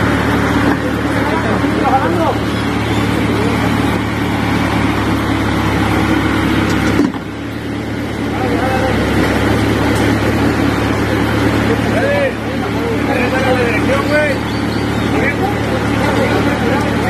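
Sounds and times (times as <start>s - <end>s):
heavy engine droning: 0.0s - 17.0s
people calling out: 8.2s - 17.0s.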